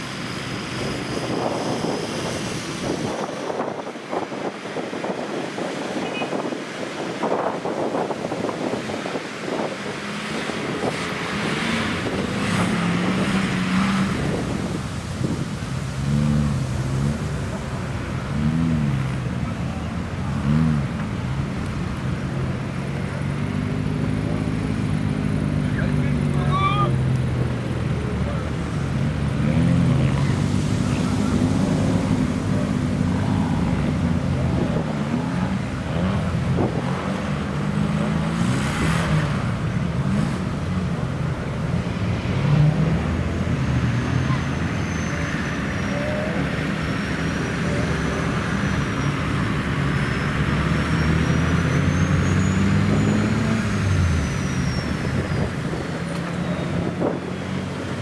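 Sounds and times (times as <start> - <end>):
off-road engines revving: 0.0 - 58.0.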